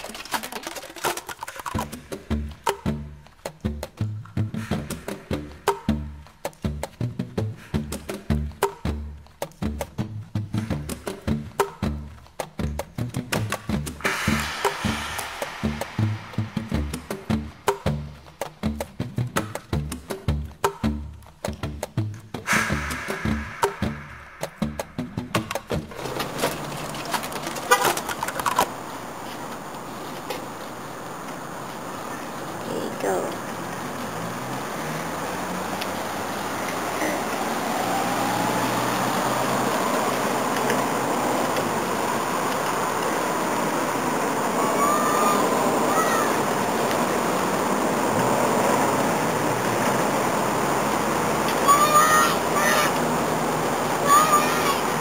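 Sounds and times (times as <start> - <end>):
outdoor noise hiss: 0.0 - 55.0
traffic noise: 0.0 - 55.0
child shouting: 44.6 - 46.6, 51.5 - 53.1, 53.9 - 55.0.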